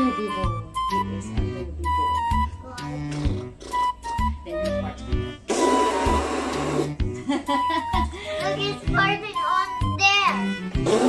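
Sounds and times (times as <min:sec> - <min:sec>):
background music steady notes: 0:00.0 - 0:11.0.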